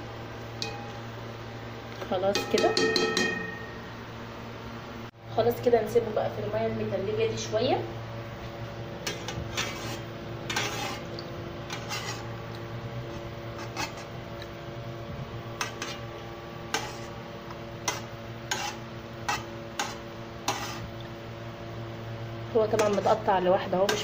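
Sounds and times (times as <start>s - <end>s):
low hum: 0.0s - 18.4s
spoon scraping metal pan: 9.0s - 12.3s, 13.5s - 14.1s, 15.6s - 16.0s, 16.7s - 17.2s, 17.8s - 20.9s, 22.7s - 23.3s.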